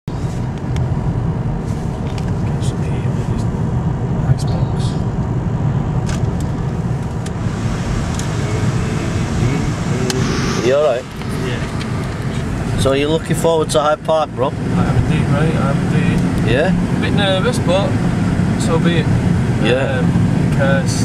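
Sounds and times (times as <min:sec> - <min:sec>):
road and engine rumble in car: 0:00.1 - 0:21.0.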